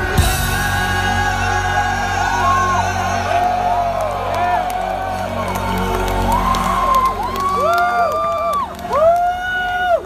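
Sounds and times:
rock band playing live: 0.0s - 3.8s
audience whooping and cheering: 0.3s - 10.0s.

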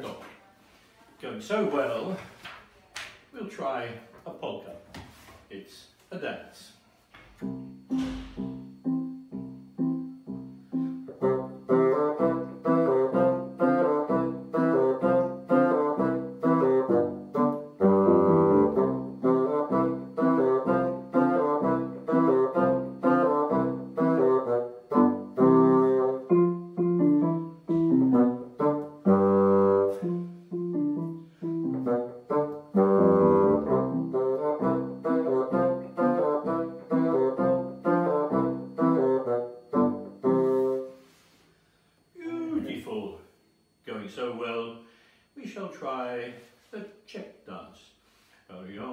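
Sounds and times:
bassoon playing polka: 7.4s - 41.0s
digital piano accompaniment: 7.4s - 41.0s.

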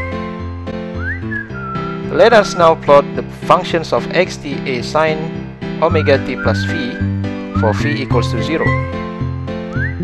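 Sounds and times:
whistled melody: 0.0s - 2.9s, 5.9s - 10.0s.

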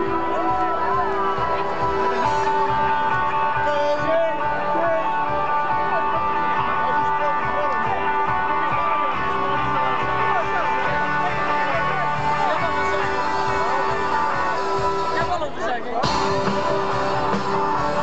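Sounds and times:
live band with electric guitars: 0.0s - 18.0s.

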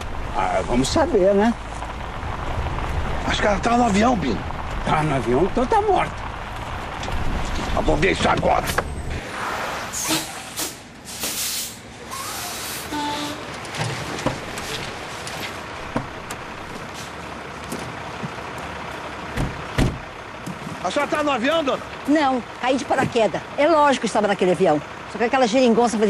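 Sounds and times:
truck engine running: 0.0s - 9.4s, 10.2s - 26.0s
truck rolling on dirt road: 0.0s - 26.0s
air-brake hisses: 9.9s - 13.5s
knocks: 19.4s - 20.0s.

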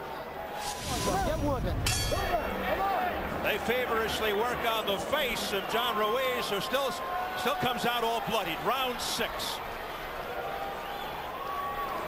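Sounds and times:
murmur of arena noise: 0.0s - 12.0s.

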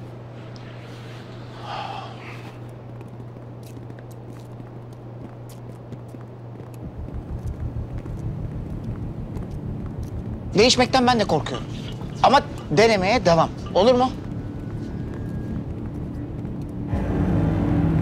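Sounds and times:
steady low drone: 0.0s - 3.8s, 6.3s - 18.0s
footsteps of group walking: 0.0s - 18.0s
low pulsing throb: 6.8s - 18.0s.

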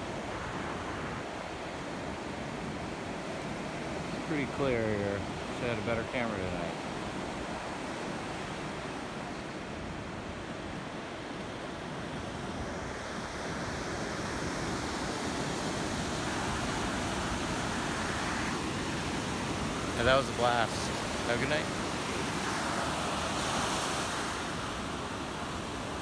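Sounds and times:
ocean surf breaking on beach: 0.0s - 26.0s.

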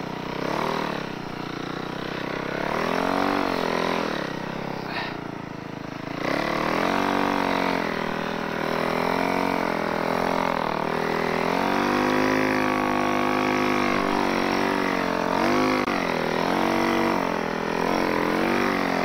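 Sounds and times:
snow bike engine revving: 0.0s - 19.0s.

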